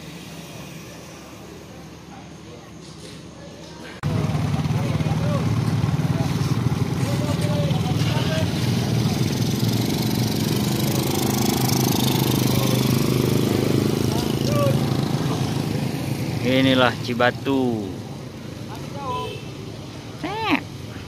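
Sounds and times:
motorcycle engines running: 0.0s - 21.0s
people talking: 1.5s - 9.4s, 12.2s - 13.2s, 14.0s - 15.4s, 20.2s - 20.6s.

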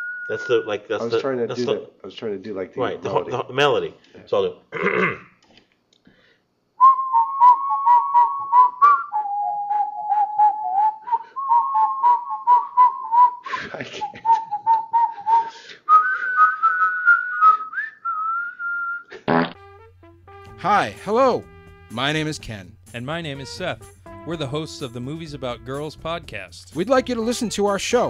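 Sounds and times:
man whistling a tune: 0.0s - 0.7s, 6.8s - 19.1s
music: 19.6s - 28.0s.

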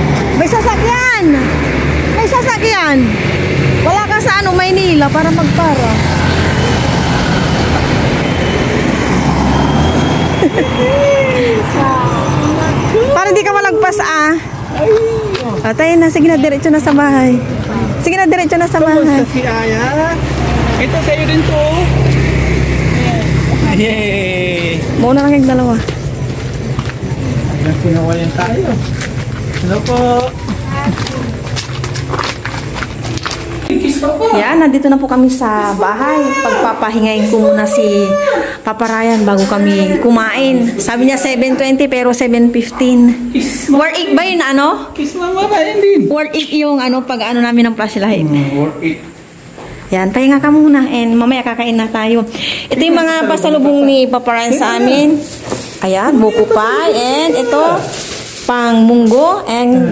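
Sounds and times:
vehicle engine running: 0.0s - 10.6s, 15.6s - 33.7s
footsteps clicking: 24.5s - 33.9s.

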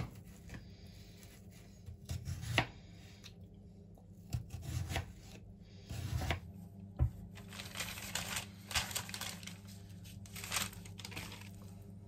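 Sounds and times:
knife cutting cucumber on board: 1.8s - 2.8s, 4.2s - 6.5s.

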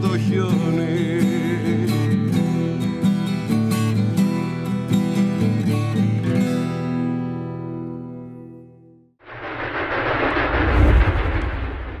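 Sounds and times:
deep rumbling sound effect: 9.2s - 12.0s.

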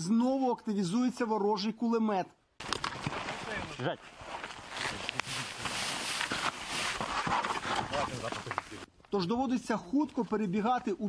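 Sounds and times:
footsteps close to microphone: 2.6s - 8.9s
rustling and scuffing of gear: 2.6s - 9.3s.

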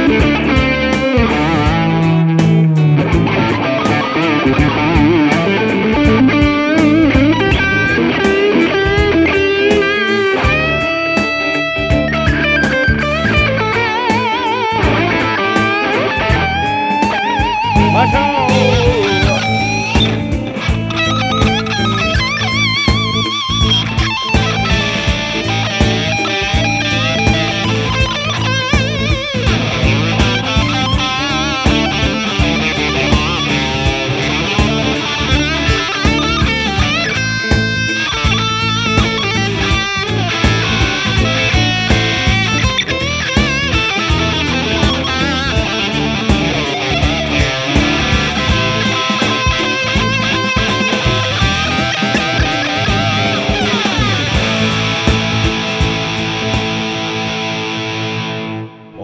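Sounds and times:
backing track with bass and drums: 0.0s - 58.1s
electric guitar lead solo: 0.0s - 59.0s.

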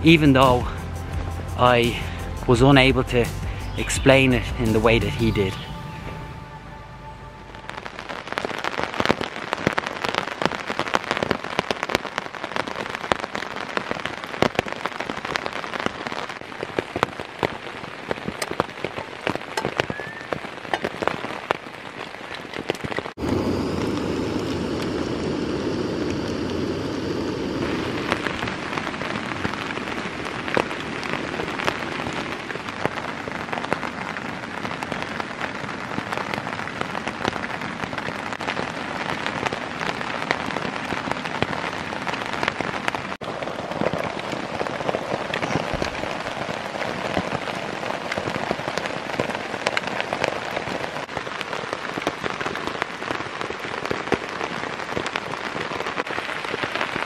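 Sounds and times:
steady rain falling: 0.0s - 57.0s.

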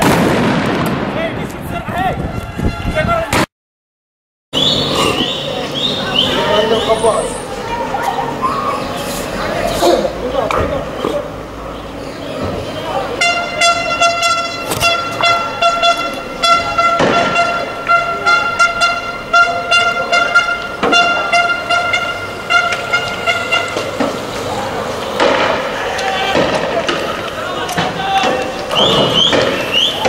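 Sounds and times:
sharp bangs: 0.0s - 2.6s, 12.4s - 30.0s
loud horn long tone: 2.2s - 3.2s, 13.0s - 24.8s
people shouting: 19.4s - 30.0s.

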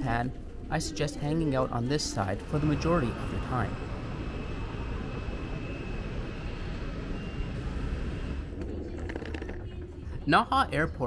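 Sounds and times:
faint high whine: 0.6s - 8.7s
rumbling hissing noise: 1.8s - 8.5s.

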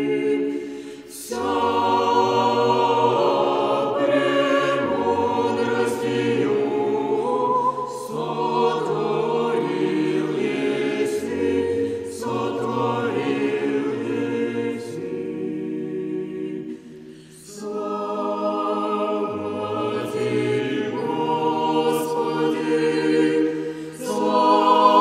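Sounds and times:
choir singing a cappella chant: 0.0s - 25.0s.

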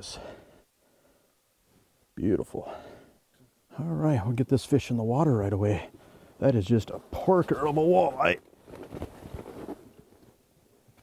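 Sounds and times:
soft rustling: 6.8s - 11.0s.

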